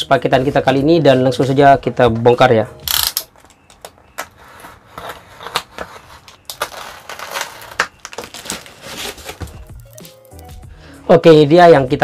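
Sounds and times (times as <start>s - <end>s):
plastic wrapping tearing and crinkling: 6.4s - 10.4s
knife slitting packing tape: 6.5s - 10.4s.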